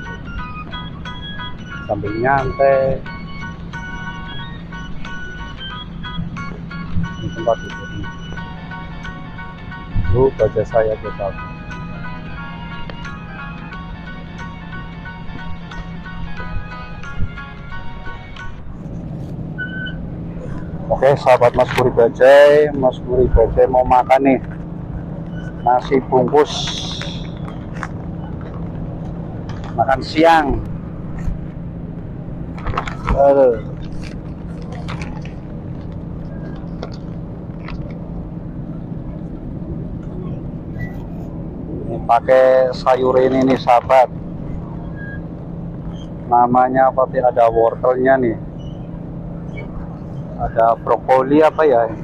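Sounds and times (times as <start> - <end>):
background music: 0.0 - 52.0
road traffic rumble: 0.0 - 52.0
short high beep: 26.4 - 27.5.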